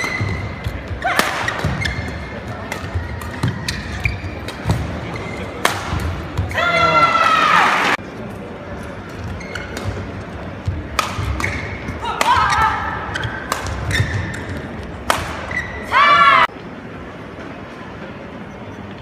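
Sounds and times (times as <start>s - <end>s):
shoes squeaking on court: 0.0s - 5.5s, 9.1s - 12.0s, 13.1s - 14.8s, 15.4s - 15.8s.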